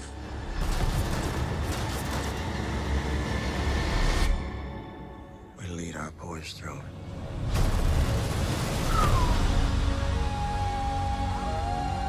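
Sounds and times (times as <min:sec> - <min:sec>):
tense music: 0:00.0 - 0:12.0.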